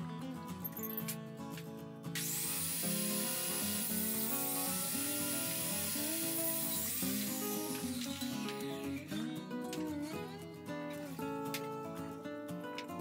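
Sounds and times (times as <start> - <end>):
table saw motor whining: 2.2 - 9.2
background music: 3.5 - 13.0.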